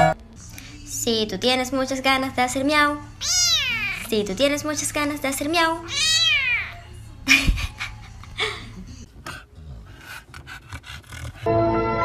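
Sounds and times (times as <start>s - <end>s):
kitten meowing: 3.2s - 4.1s, 5.9s - 6.9s.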